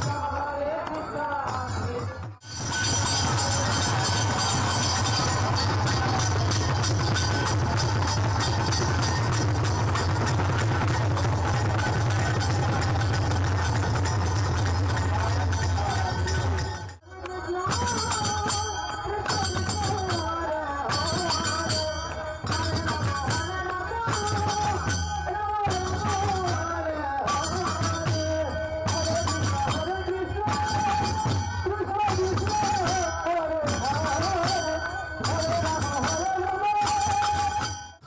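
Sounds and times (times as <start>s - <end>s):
drums fast loud rhythm: 0.0s - 38.0s
ringing hand cymbals: 0.0s - 38.0s
voices singing over drums: 0.0s - 38.0s.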